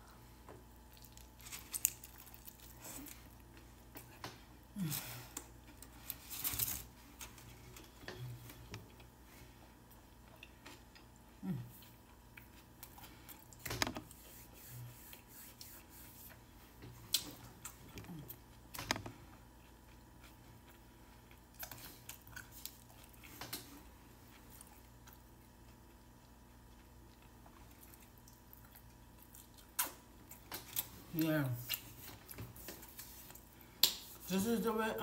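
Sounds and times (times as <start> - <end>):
person chewing: 0.8 - 4.2, 4.9 - 13.6, 17.0 - 31.0.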